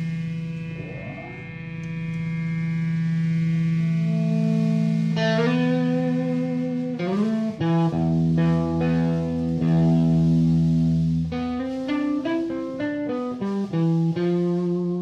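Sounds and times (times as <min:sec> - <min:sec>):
low bass note: 0:00.0 - 0:03.0
droning electric guitar: 0:00.0 - 0:15.0.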